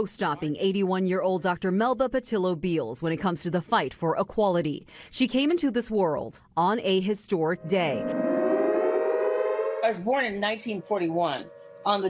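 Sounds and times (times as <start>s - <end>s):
woman speaking: 0.0s - 8.2s
air-raid siren winding up: 7.4s - 12.0s.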